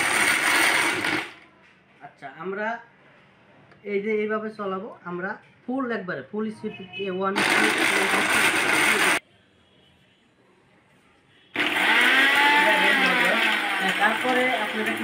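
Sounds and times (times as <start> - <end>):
mixer grinder motor grinding: 0.0 - 1.4, 7.4 - 9.2, 11.6 - 15.0.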